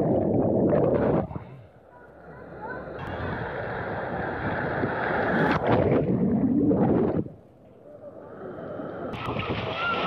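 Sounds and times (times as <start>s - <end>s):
water rushing down slide: 9.1s - 10.0s
loud splash into pool: 9.2s - 10.0s.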